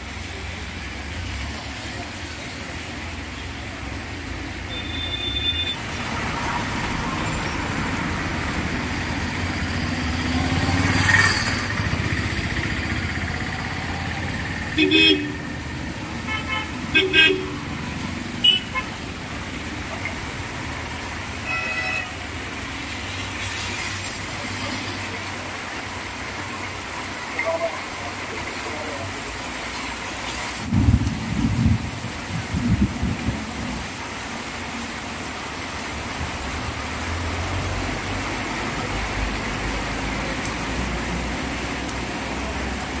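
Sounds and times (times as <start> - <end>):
heavy rain falling: 0.0 - 43.0
vehicle horn: 14.8 - 15.4, 16.3 - 17.6, 18.4 - 18.9, 21.4 - 22.2.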